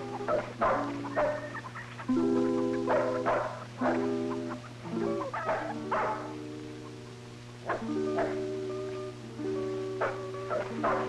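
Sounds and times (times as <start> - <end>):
steady low hum: 0.0 - 11.0
solo guitar chords: 2.0 - 11.0.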